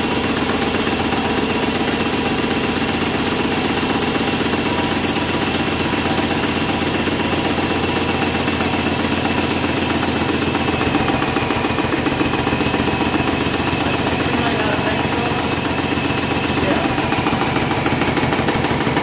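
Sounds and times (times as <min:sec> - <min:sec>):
paint sprayer pump running: 0:00.0 - 0:19.0
spray gun spraying into bucket: 0:00.4 - 0:19.0.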